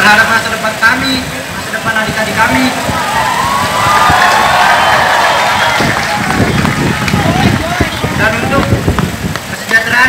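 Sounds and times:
crowd cheering and shouting: 2.5 - 8.8.

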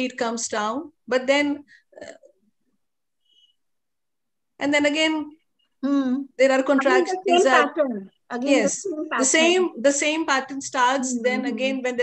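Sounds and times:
person speaking: 5.8 - 9.9, 10.6 - 12.0.

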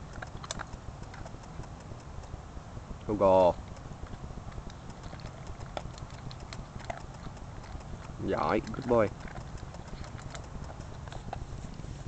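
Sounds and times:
dog chewing dry kibble: 0.0 - 2.4, 3.5 - 12.0
kibble clicking in metal bowl: 4.6 - 11.4.

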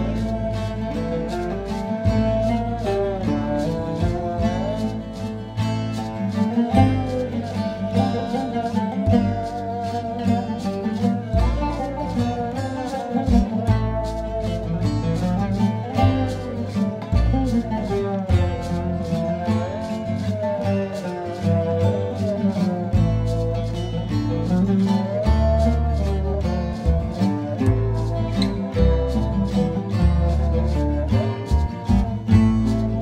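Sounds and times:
drum beat: 0.0 - 24.8, 25.4 - 33.0
oud melody with sliding notes: 0.0 - 33.0
shaker: 0.0 - 33.0
strummed acoustic guitar: 0.0 - 33.0
upright bass: 0.0 - 33.0.

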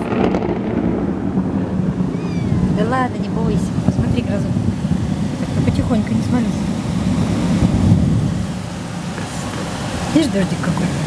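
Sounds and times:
rain hissing: 0.0 - 11.0
thunder rumbling: 0.0 - 11.0.

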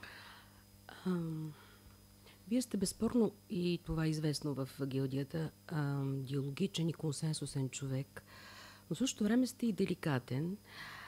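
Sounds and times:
person humming: 0.9 - 1.7.

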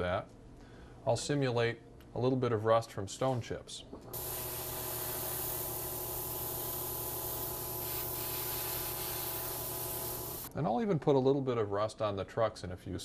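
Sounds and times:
airbrush spraying hiss: 4.2 - 10.5.

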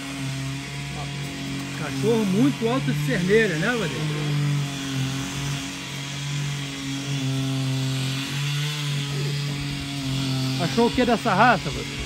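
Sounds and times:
grass cutter engine running: 0.0 - 12.0.

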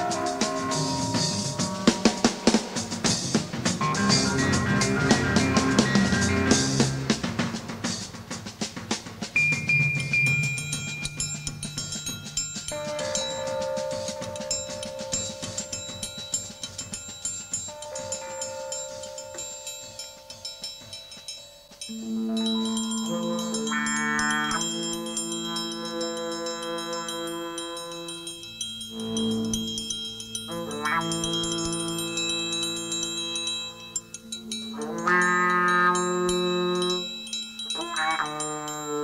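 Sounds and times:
jazz fusion band playing: 0.0 - 9.9
drum kit playing busily: 0.0 - 25.4
cymbal and percussion ticks: 0.0 - 39.0.

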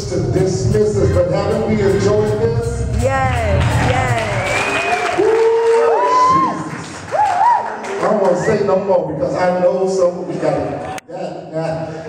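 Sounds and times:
music: 0.0 - 5.1
people calling out: 3.0 - 4.7
congregation clapping: 3.5 - 8.5.

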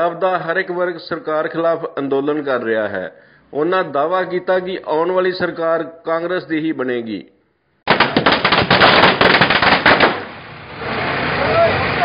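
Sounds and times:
firecrackers crackling bangs: 7.9 - 11.3.

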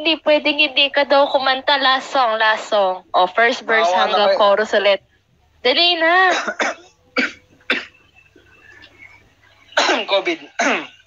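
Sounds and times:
person coughing: 6.3 - 8.0, 9.8 - 11.0.

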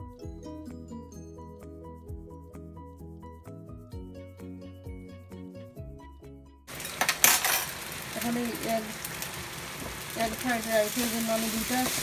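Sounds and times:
background music: 0.0 - 7.4
utensil clattering on pan: 6.7 - 8.0
food sizzling in frying pan: 6.7 - 12.0.

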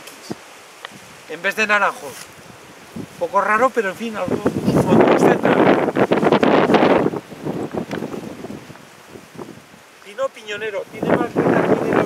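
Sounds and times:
wind buffeting microphone: 2.2 - 12.0.

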